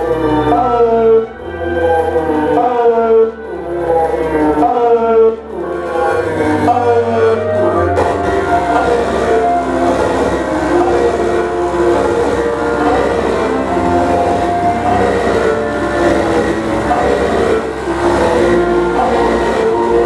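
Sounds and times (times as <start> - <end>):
noise music of held tones: 0.0 - 20.0
steady low hum: 0.0 - 20.0.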